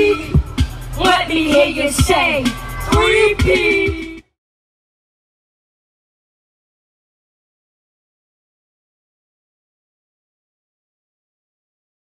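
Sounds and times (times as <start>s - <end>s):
rapping over backing music: 0.0s - 4.3s.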